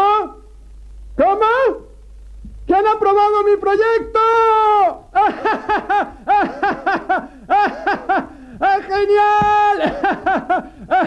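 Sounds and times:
high-pitched delighted laughter: 5.2 - 11.0.

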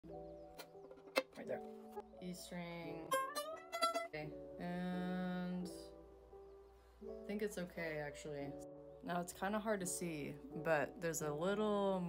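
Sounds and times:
violin strings plucked: 3.0 - 4.4.

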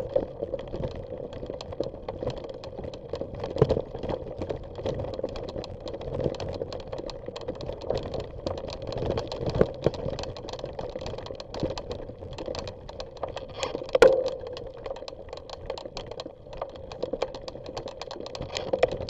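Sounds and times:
bike rattling: 0.0 - 19.0.

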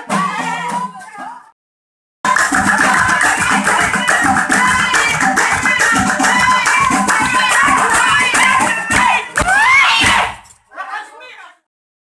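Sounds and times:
women singing together: 0.0 - 1.5, 2.3 - 10.4
rattling percussion: 2.3 - 9.5.

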